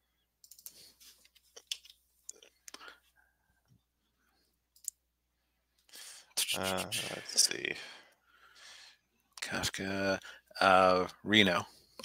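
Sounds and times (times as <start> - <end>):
faint irregular clicks: 0.4 - 2.9, 4.7 - 5.0
person muttering: 6.4 - 7.3.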